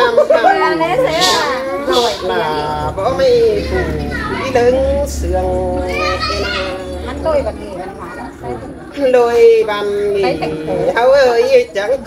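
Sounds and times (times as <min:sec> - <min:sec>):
backing voices: 0:00.1 - 0:11.2.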